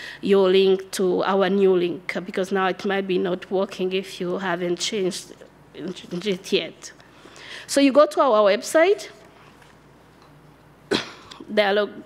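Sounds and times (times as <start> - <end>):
short sharp cough: 10.9 - 11.4.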